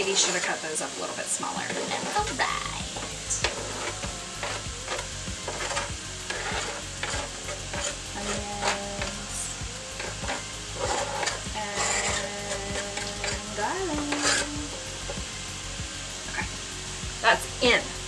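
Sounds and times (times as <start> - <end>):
meat and vegetables sizzling in skillet: 0.0 - 18.0
knife scraping on cutting board: 3.4 - 8.8, 10.0 - 12.3.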